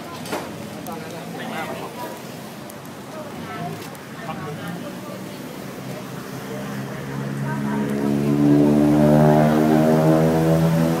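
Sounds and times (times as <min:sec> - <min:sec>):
engine running: 0:05.4 - 0:11.0.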